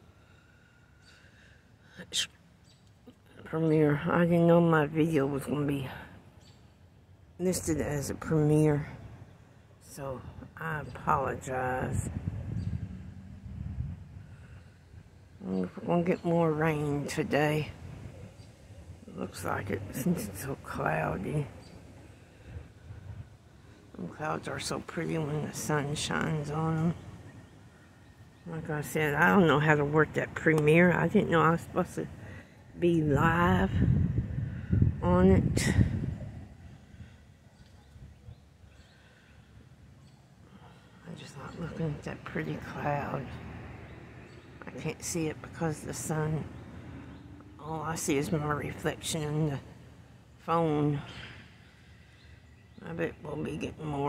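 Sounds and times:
low steady rumble: 0:00.0 - 0:54.0
wind buffeting microphone: 0:10.0 - 0:38.9.

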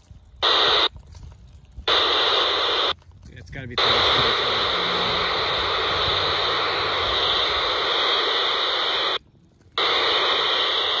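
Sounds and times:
scanner static hiss: 0:00.4 - 0:00.9, 0:01.8 - 0:03.0, 0:03.7 - 0:11.0.

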